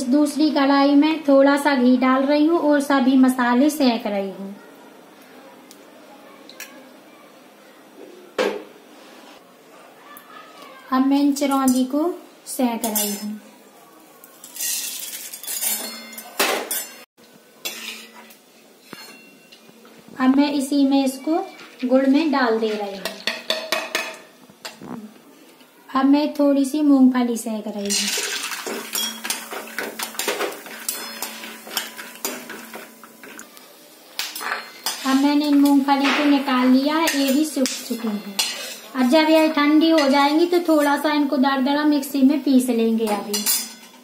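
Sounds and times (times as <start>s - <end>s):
metal ladle scraping a pan: 14.4s - 17.0s, 17.6s - 19.3s, 27.9s - 33.4s, 37.0s - 38.9s.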